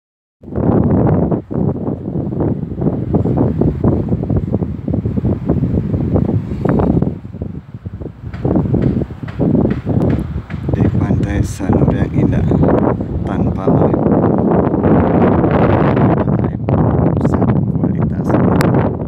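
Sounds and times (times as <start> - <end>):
wind buffeting microphone: 0.4 - 19.0.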